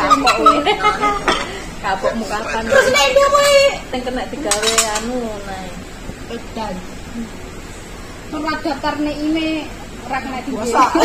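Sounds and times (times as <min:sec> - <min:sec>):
woman's voice: 0:00.0 - 0:07.4, 0:08.3 - 0:11.0.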